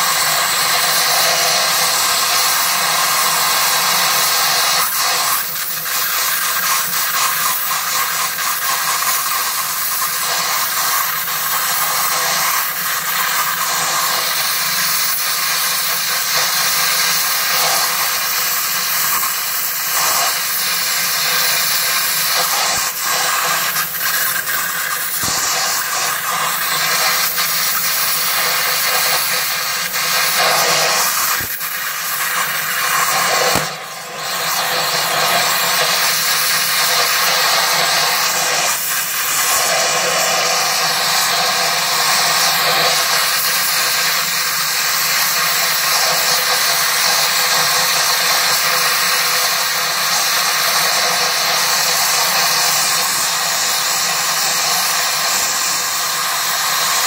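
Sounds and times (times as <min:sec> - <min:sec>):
gas torch flame hissing: 0:00.0 - 0:57.0.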